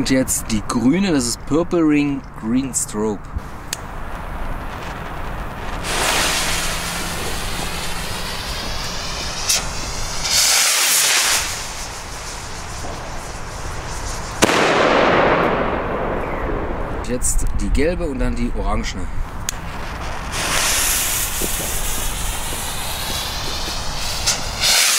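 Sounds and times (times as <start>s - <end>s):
firework bang: 3.4s - 17.1s, 19.6s - 24.9s
firework rocket whoosh: 3.4s - 17.1s, 19.4s - 24.9s
loud rushing noise: 3.4s - 17.2s.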